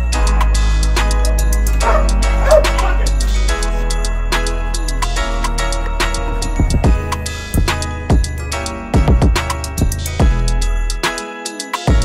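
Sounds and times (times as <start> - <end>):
background music: 0.0 - 12.0
dog barking: 1.7 - 3.8.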